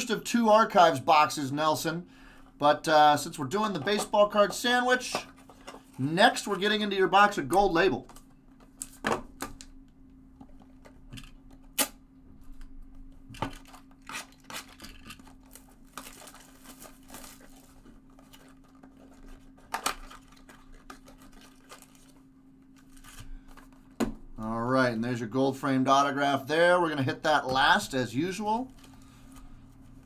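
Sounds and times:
faint steady hum: 0:00.0 - 0:30.0
shrink-wrap crinkling and tearing: 0:13.5 - 0:23.7.

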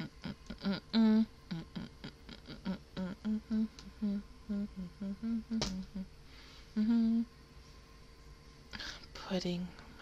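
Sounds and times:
woman humming: 0:00.0 - 0:07.4.

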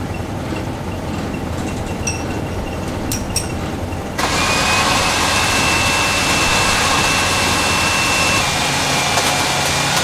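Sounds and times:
grain handling machinery noise: 0:00.4 - 0:10.0
thin high whine: 0:02.1 - 0:08.5.

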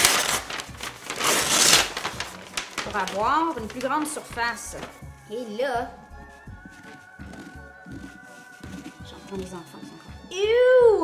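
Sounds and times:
paper bag crackling and rustling: 0:00.0 - 0:05.0, 0:06.3 - 0:10.1.

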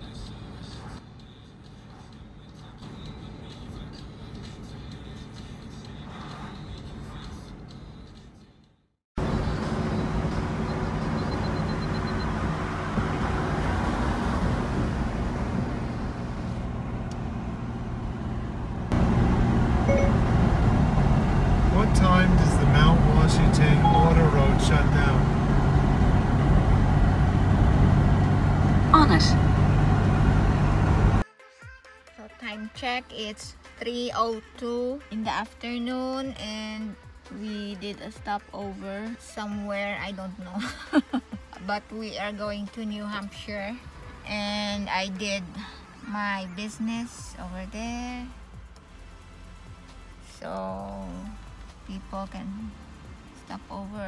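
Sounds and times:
car road noise: 0:00.0 - 0:08.6, 0:09.2 - 0:31.2, 0:36.4 - 0:54.0
music: 0:00.0 - 0:08.9, 0:31.2 - 0:54.0.

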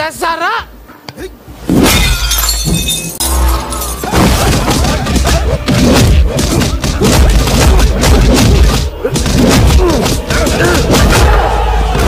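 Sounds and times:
glass bottle smashing: 0:01.8 - 0:04.9
bass-heavy background music: 0:03.1 - 0:12.0.

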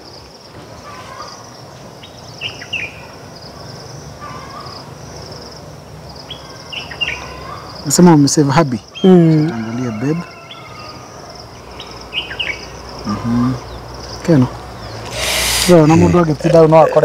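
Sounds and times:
high insect drone: 0:09.6 - 0:16.8
short bird chirps: 0:15.0 - 0:16.0.

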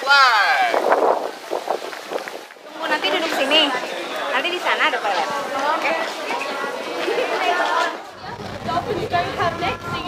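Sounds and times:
group of people talking: 0:00.0 - 0:10.0
low rumble: 0:08.2 - 0:10.0.

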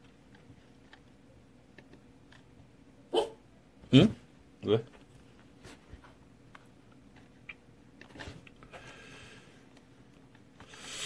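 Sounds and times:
dog barking: 0:03.1 - 0:03.4.

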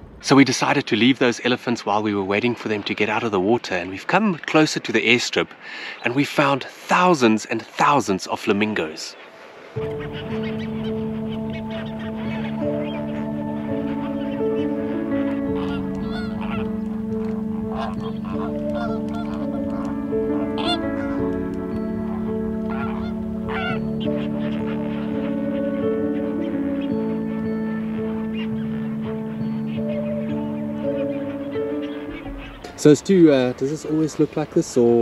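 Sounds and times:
background music of sustained chords: 0:07.2 - 0:35.0
flamingos honking: 0:08.8 - 0:35.0.

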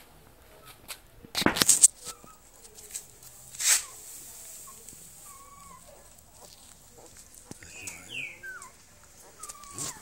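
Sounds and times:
puppies whimpering: 0:04.7 - 0:10.0.

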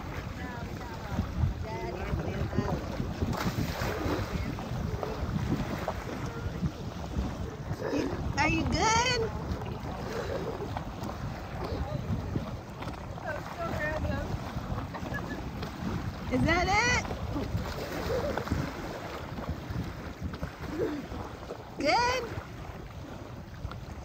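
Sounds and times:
small waves lapping on sand: 0:00.0 - 0:24.0
wind buffeting microphone: 0:00.0 - 0:24.0.

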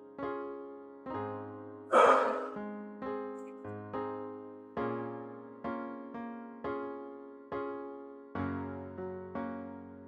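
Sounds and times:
soft electric piano chords: 0:00.0 - 0:10.0
person gasping: 0:01.9 - 0:02.6.

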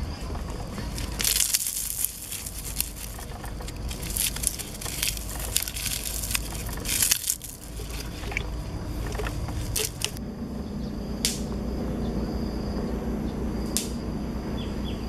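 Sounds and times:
faint high whine: 0:00.0 - 0:15.0
wet squishing and crackling: 0:00.3 - 0:10.2.

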